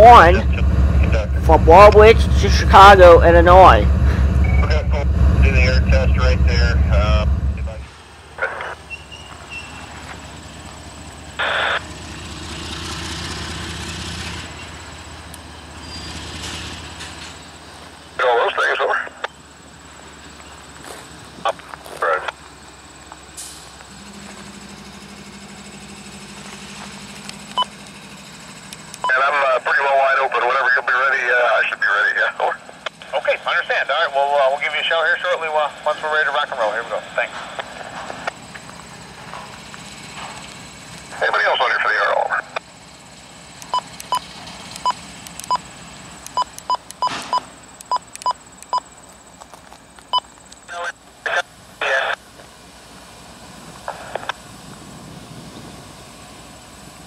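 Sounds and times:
scanner radio voice chatter: 0:00.0 - 0:09.0, 0:18.2 - 0:19.3, 0:21.4 - 0:22.4, 0:29.1 - 0:38.3, 0:41.1 - 0:42.6, 0:50.7 - 0:52.2, 0:53.8 - 0:54.4
low rumble of rail equipment: 0:00.0 - 0:57.0.

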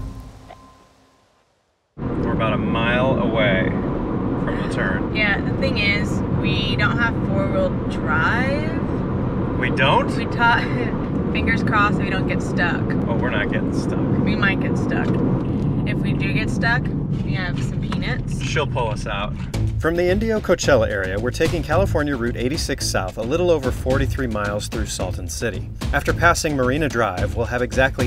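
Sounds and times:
car road and engine noise: 0:00.0 - 0:28.0
people's voices: 0:04.5 - 0:08.9, 0:09.6 - 0:15.2, 0:15.9 - 0:28.0.

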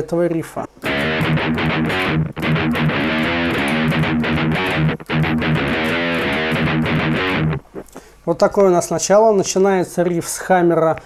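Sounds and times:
distorted electric guitar riff: 0:00.8 - 0:08.0.

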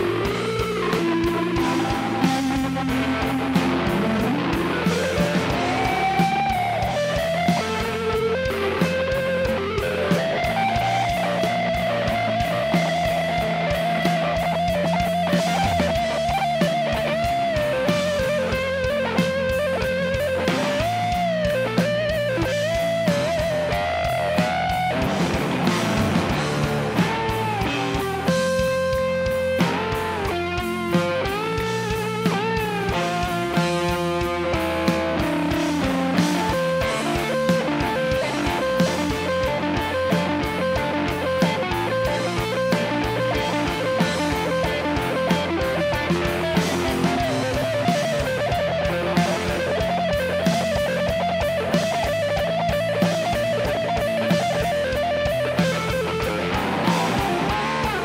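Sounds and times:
bass guitar: 0:00.0 - 0:58.0
drum kit: 0:00.0 - 0:58.0
electric guitar lead: 0:00.0 - 0:58.0.

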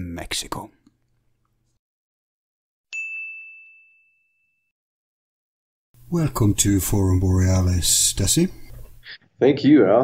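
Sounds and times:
bell-like ding: 0:02.9 - 0:04.8.

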